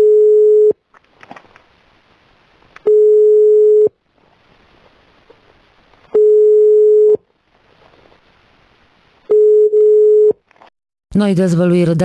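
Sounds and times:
telephone ringback tone: 0.0 - 0.8, 2.9 - 3.9, 6.2 - 7.2, 9.3 - 10.4.

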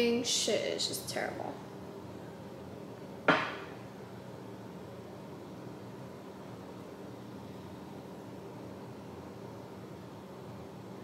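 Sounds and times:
low room hum: 0.0 - 11.0
sharp knock of hard object: 3.3 - 3.7.

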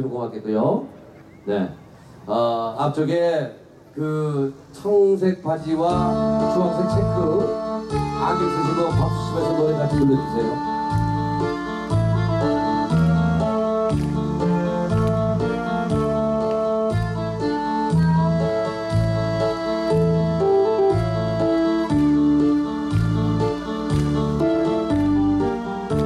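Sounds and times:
held keyboard chords: 5.5 - 26.0
backing track music: 5.7 - 26.0.

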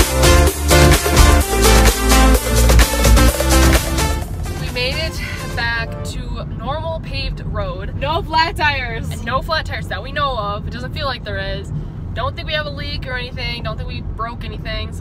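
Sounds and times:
car road and engine rumble: 0.0 - 15.0
woman talking: 4.6 - 15.0.

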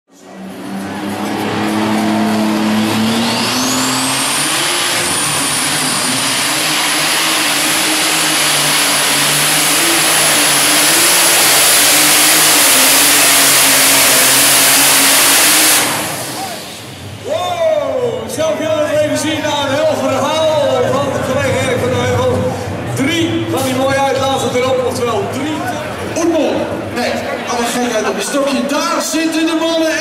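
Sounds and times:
tractor engine at full power: 0.1 - 28.4
turbo whine: 0.5 - 17.2.

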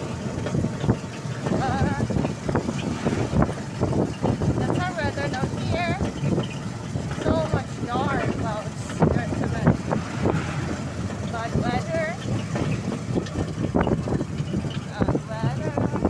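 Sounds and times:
low rattle: 0.0 - 16.0
vehicle engine and road noise: 0.0 - 16.0
wind buffeting microphone: 0.0 - 16.0.

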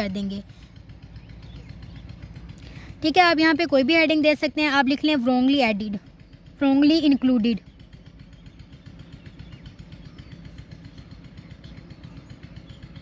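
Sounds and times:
small engine idling: 0.0 - 13.0.

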